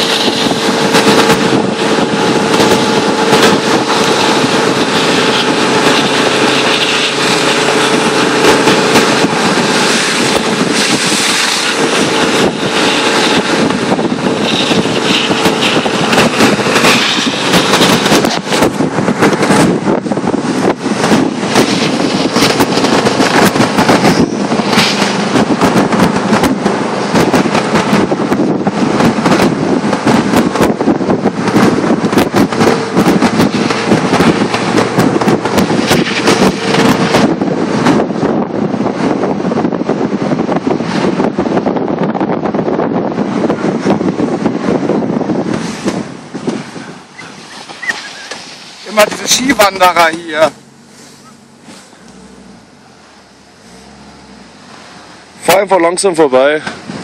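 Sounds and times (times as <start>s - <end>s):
microphone crackling: 0.0s - 55.7s
car engine hum: 0.0s - 57.0s
wind and road noise: 0.0s - 57.0s.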